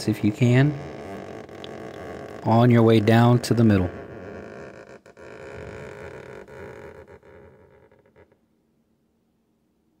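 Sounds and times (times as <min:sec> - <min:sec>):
fingertip rubbing on painted panel: 0:00.0 - 0:08.4.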